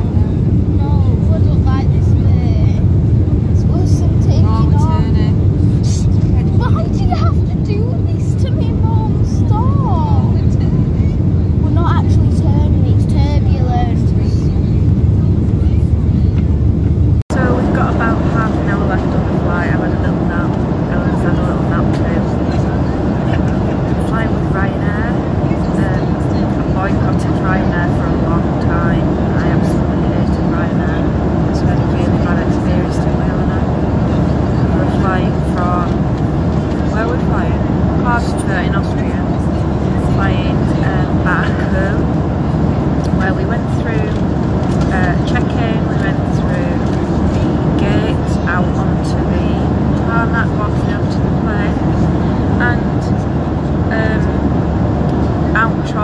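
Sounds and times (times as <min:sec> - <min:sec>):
woman talking: 0:00.0 - 0:16.4, 0:17.3 - 0:56.0
aircraft cabin engine noise: 0:00.0 - 0:56.0.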